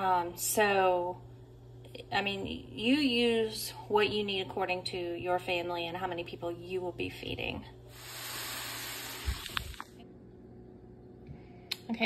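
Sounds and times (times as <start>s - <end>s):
food sizzling on stovetop: 7.9s - 9.8s.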